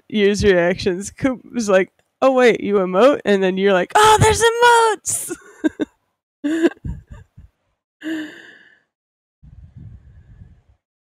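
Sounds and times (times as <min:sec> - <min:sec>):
person laughing breathily: 0:06.5 - 0:08.6
person sighing: 0:08.0 - 0:08.6.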